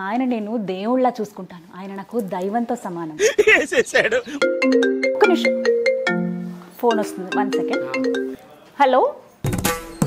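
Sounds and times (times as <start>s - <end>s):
mobile phone melodic ringtone: 4.3s - 8.4s.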